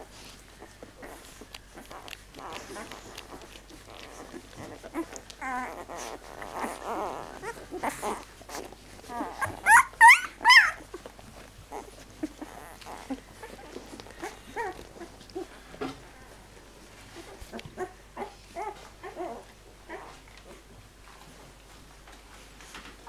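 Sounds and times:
puppies squealing: 1.0 - 11.1, 11.7 - 15.5.

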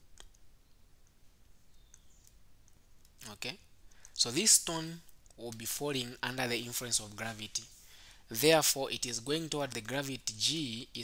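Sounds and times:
faint sharp clicks: 0.1 - 3.3.

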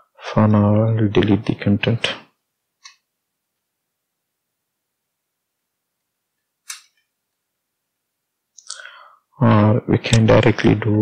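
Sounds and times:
person speaking: 0.2 - 2.4, 8.6 - 11.0
breath: 8.7 - 9.3.

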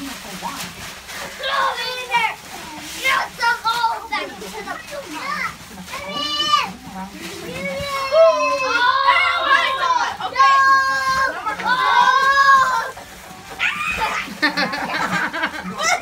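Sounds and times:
family chatter: 0.0 - 16.0
young children calling and babbling: 1.2 - 16.0.

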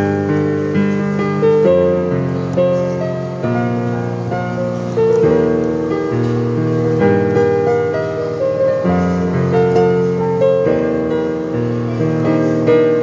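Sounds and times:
digital piano slow melody: 0.0 - 13.0.

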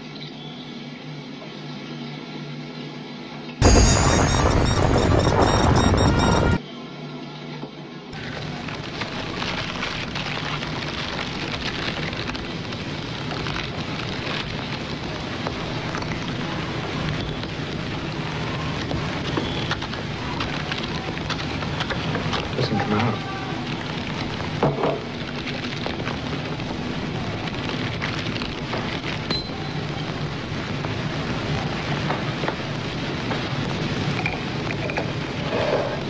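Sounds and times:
faint crackles and clicks: 3.6 - 6.6, 8.2 - 36.0
loud burst of music: 3.6 - 6.6.

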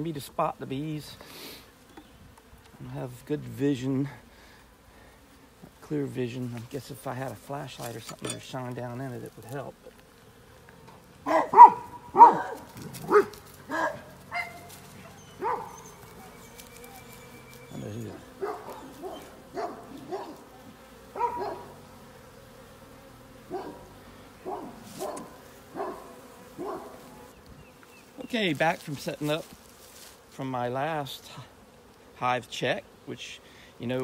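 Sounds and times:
honeybees humming: 0.0 - 34.0
dog barking: 11.2 - 16.3, 18.4 - 20.4, 21.2 - 21.7, 23.5 - 27.0.

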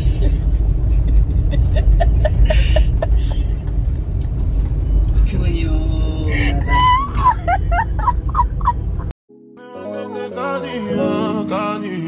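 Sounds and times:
woman laughing: 0.0 - 3.5, 6.3 - 9.0
car cabin road and engine rumble: 0.0 - 9.1.

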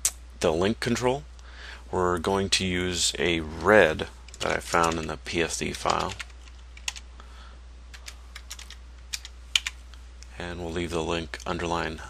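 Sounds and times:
steady low hum: 0.0 - 12.0
computer keyboard typing: 4.3 - 5.1, 5.7 - 7.0, 7.9 - 9.8.

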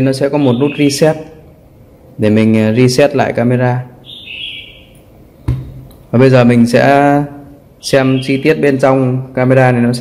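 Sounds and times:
camera knocking on desk: 5.5 - 5.9.

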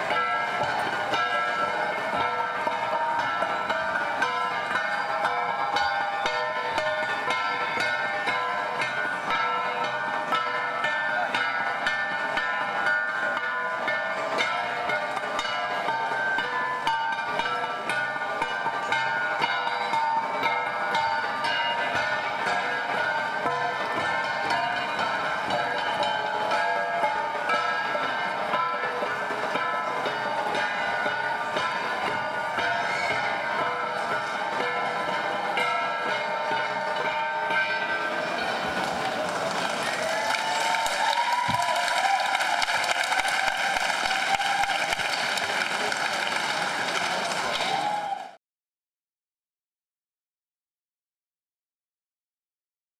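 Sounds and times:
bronze gongs struck in rhythm: 0.0 - 40.3.

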